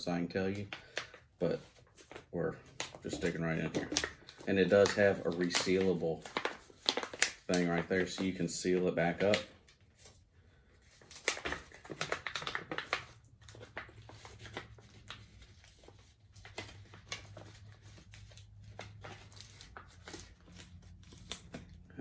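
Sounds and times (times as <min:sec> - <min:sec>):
plastic bag crinkling: 0:00.1 - 0:10.1, 0:10.8 - 0:22.0.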